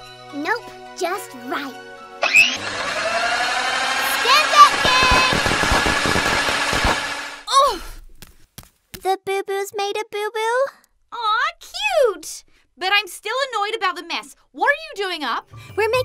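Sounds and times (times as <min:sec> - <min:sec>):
electric hand mixer whirring: 0:02.2 - 0:07.5.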